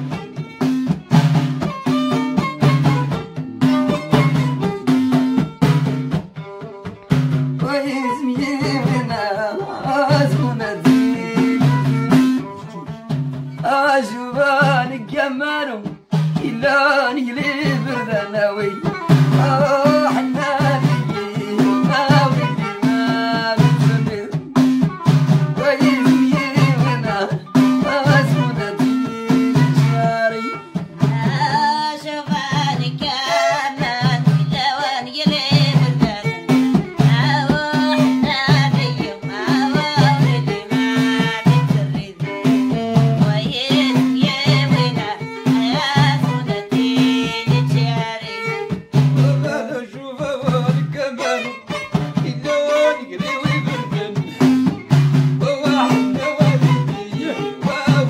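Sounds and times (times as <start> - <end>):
bowed violin: 0.0 - 58.0
frame drums beating: 0.0 - 58.0
people singing: 7.6 - 13.0, 13.6 - 58.0.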